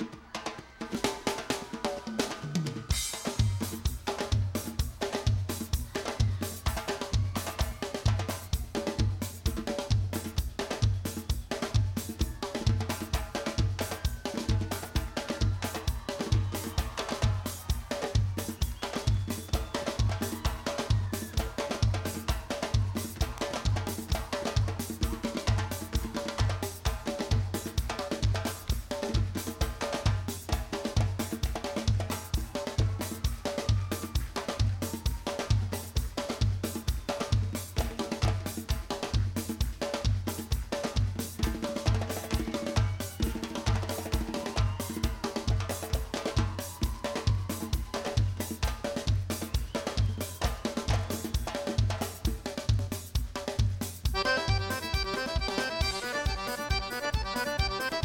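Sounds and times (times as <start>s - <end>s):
drum kit playing steady beat: 0.0s - 58.0s
held backing notes: 54.1s - 58.0s.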